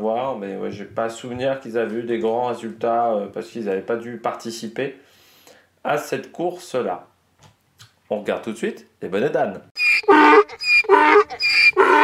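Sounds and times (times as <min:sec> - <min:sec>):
donkey braying: 0:09.8 - 0:12.0.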